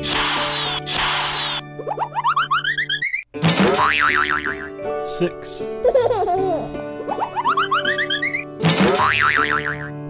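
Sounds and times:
children's background music: 0.0s - 10.0s
cartoon boings: 7.2s - 9.9s.

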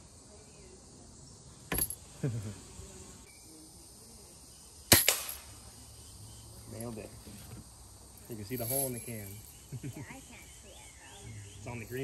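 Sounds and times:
bb gun firing crack: 4.9s - 5.5s.

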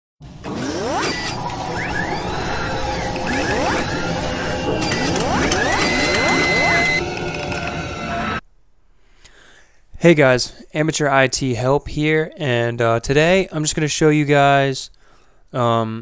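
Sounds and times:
rising mechanical whines: 0.2s - 8.4s
sharp clicks and clanks: 0.4s - 8.0s.

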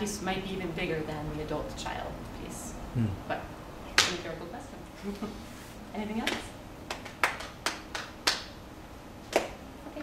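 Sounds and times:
sharp knocks or claps: 6.3s - 8.6s.

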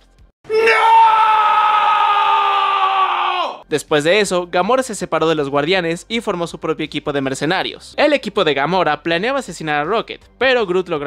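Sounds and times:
man screaming: 0.5s - 3.6s.

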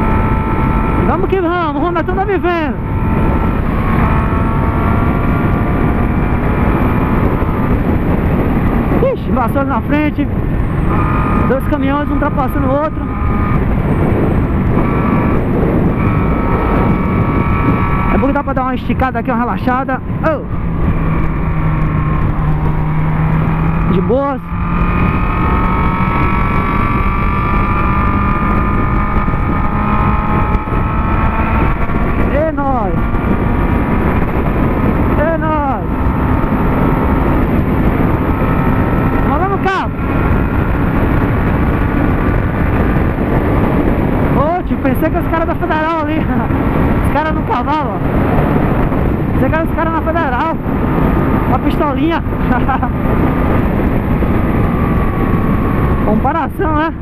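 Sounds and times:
heavy wind noise: 0.0s - 57.0s
motorcycle engine cruising: 0.0s - 57.0s.

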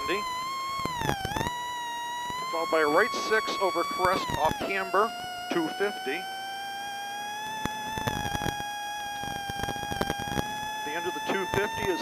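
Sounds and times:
rally car engine whine: 0.0s - 12.0s.

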